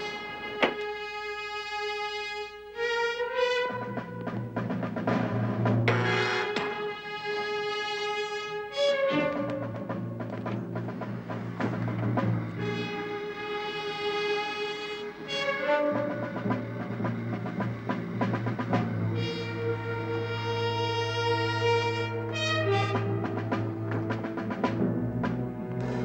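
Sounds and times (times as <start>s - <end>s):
dramatic orchestral music: 0.0s - 26.0s
timpani: 0.0s - 26.0s.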